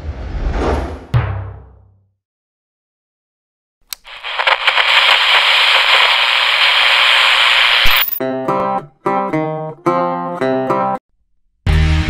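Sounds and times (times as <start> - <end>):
television static hiss: 4.0 - 8.2.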